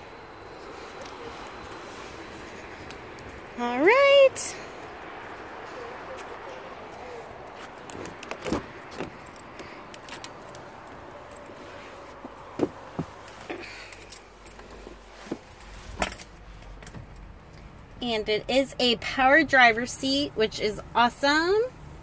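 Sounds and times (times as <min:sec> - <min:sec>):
outdoor background hiss: 0:00.0 - 0:22.0
handling clicks and rattles: 0:07.5 - 0:17.8
car door opening: 0:07.8 - 0:10.3.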